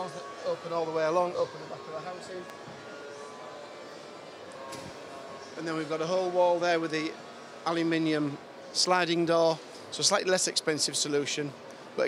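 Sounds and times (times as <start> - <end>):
faint steady tones: 0.0 - 12.0.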